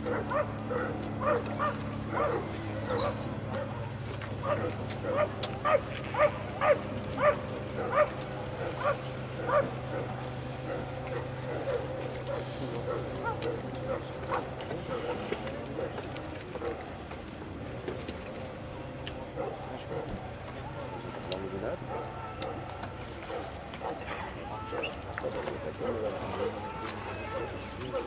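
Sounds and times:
steady low hum: 0.0s - 28.0s
animal yelping calls: 1.2s - 3.3s.

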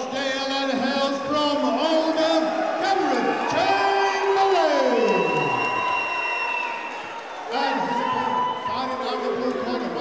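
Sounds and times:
crowd cheering in a hall: 0.0s - 10.0s.

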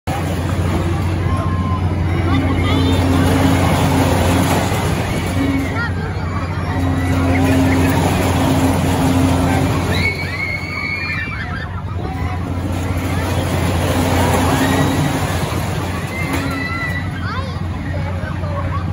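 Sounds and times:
crowd babble: 0.0s - 18.9s
ride machine hum: 0.0s - 18.9s.

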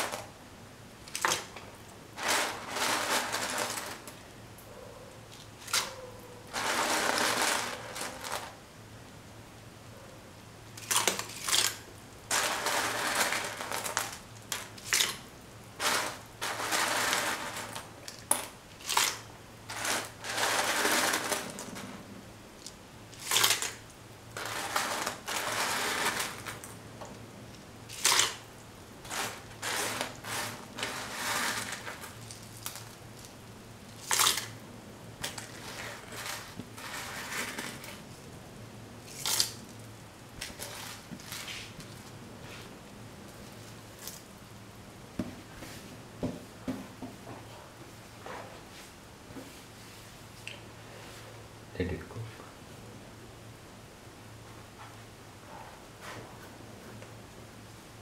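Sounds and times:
pasta stirred in boiling water: 0.0s - 0.4s, 1.0s - 4.2s, 6.5s - 8.7s, 10.7s - 46.0s.

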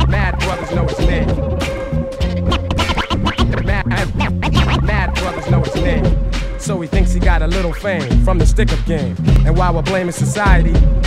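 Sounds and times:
hip-hop beat with heavy bass: 0.0s - 11.0s
turntable scratching: 0.0s - 11.0s.

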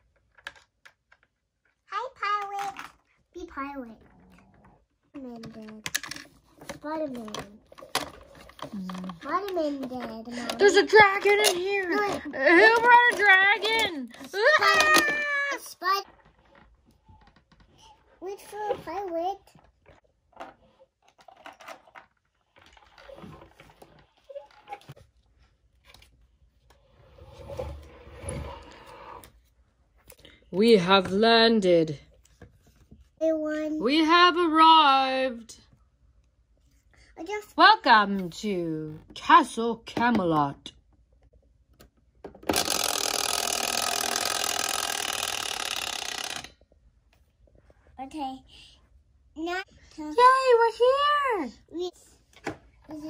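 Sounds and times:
plastic toy figures clicking: 42.5s - 46.6s.

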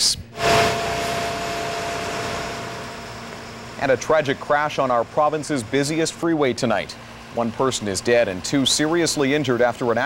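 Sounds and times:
faint held tone: 0.3s - 6.2s
noisy swell sound effect: 0.3s - 6.6s.

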